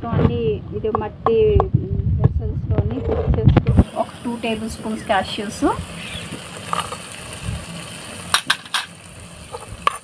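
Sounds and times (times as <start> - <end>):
faint frying sizzle: 3.7 - 10.0.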